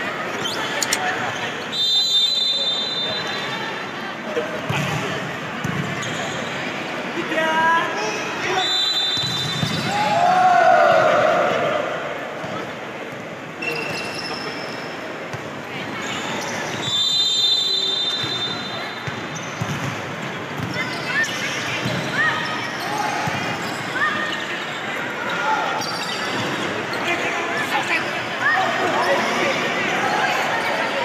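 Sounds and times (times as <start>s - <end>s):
shrill whistle: 1.7s - 3.5s, 8.6s - 9.9s, 16.8s - 18.8s
shoes squeaking on court: 5.7s - 6.6s, 18.1s - 27.1s
players shouting: 8.4s - 12.4s.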